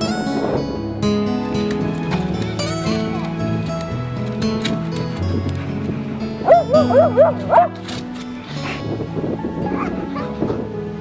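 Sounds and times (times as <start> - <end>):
background music: 0.0 - 11.0
dog howling: 6.4 - 7.8.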